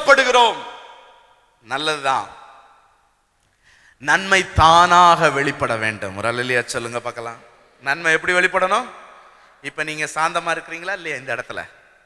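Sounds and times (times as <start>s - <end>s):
man preaching over loudspeaker: 0.0s - 0.9s, 1.6s - 2.6s, 4.0s - 11.7s.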